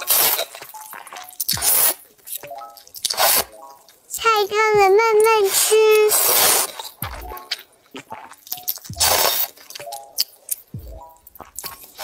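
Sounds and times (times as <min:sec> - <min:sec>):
person slurping noodles: 0:01.5 - 0:02.0, 0:03.1 - 0:03.5, 0:05.5 - 0:07.0, 0:08.0 - 0:09.6.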